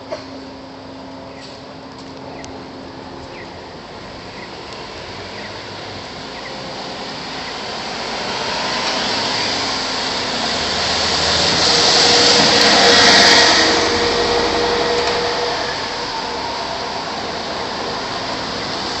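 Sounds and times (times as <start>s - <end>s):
steady traffic noise: 0.0s - 19.0s
tyres hissing on wet road: 0.0s - 19.0s.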